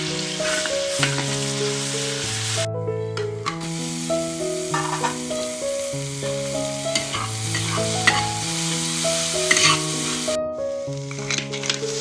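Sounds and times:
food sizzling in hot oil: 0.0s - 2.7s, 3.4s - 12.0s
utensil scraping metal pan: 4.7s - 5.2s, 7.0s - 8.4s, 9.5s - 10.1s.

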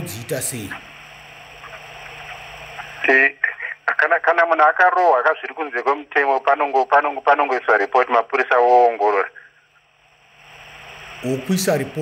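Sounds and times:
man speaking over telephone line: 0.0s - 0.9s, 3.0s - 9.5s
steady hiss with low hum: 0.0s - 12.0s.

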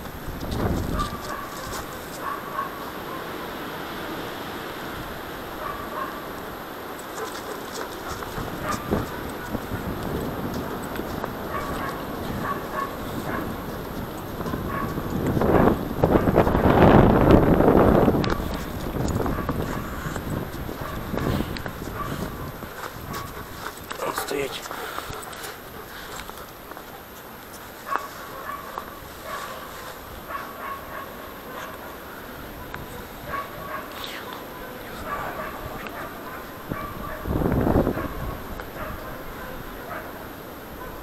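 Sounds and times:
microphone rubbing: 0.0s - 2.2s, 7.0s - 24.0s
wind noise on microphone: 0.0s - 2.4s, 4.4s - 24.0s, 32.2s - 34.2s, 34.8s - 41.0s
footsteps on snow: 0.0s - 2.8s, 6.8s - 31.8s.

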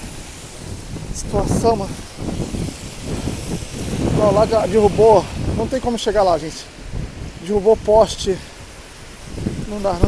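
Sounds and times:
car tyres hissing on wet road: 0.0s - 10.0s
strong wind gusting on microphone: 0.0s - 10.0s.

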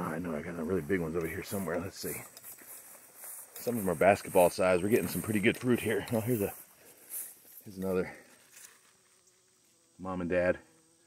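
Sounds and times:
bee buzzing faintly: 0.0s - 11.0s.

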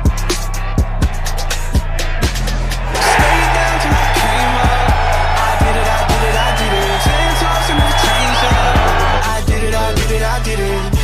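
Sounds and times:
crowd cheering: 0.0s - 9.5s
hip hop music with heavy bass: 0.0s - 11.0s.

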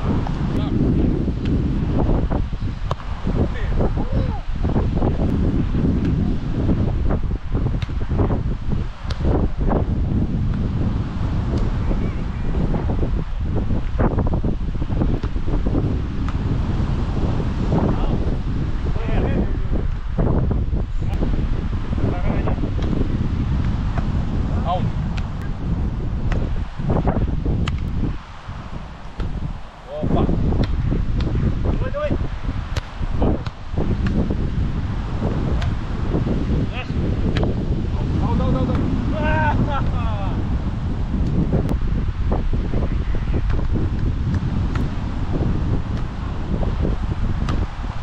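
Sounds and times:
wind buffeting microphone: 0.0s - 48.0s
hands slapping volleyball: 0.2s - 0.5s, 1.4s - 1.6s, 2.8s - 3.2s, 6.0s - 6.2s, 7.7s - 8.0s, 9.0s - 9.4s, 10.5s - 10.7s, 11.5s - 11.8s, 15.1s - 15.4s, 16.2s - 16.4s, 22.7s - 23.0s, 23.6s - 24.2s, 25.1s - 25.3s, 26.2s - 26.5s, 27.6s - 28.0s, 29.0s - 29.4s, 30.5s - 31.4s, 32.7s - 34.3s, 35.5s - 35.8s, 37.3s - 37.6s, 38.7s - 38.9s, 41.2s - 41.4s, 43.4s - 45.0s, 45.9s - 46.2s, 47.4s - 47.7s.

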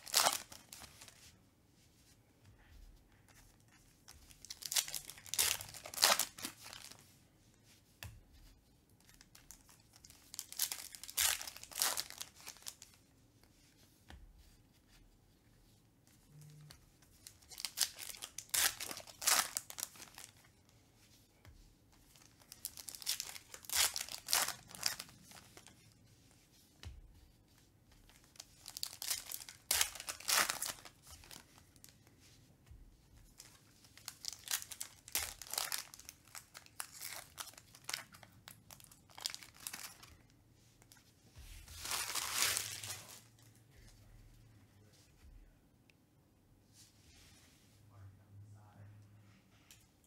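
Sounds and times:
foil wrapper crinkling and tearing: 0.0s - 0.8s, 4.4s - 7.0s, 9.4s - 12.9s, 17.3s - 20.4s, 22.4s - 25.4s, 28.3s - 31.4s, 33.4s - 40.0s, 41.8s - 43.2s.

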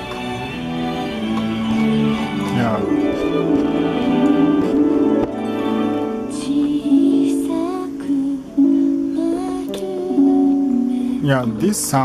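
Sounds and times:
melody through loudspeaker: 2.4s - 12.0s.

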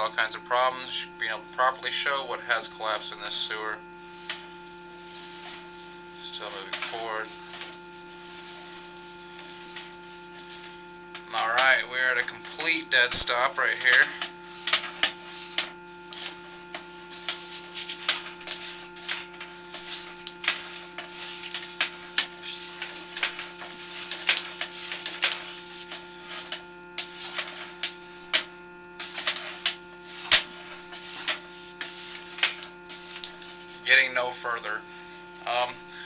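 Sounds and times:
steady electrical hum: 0.0s - 36.0s.

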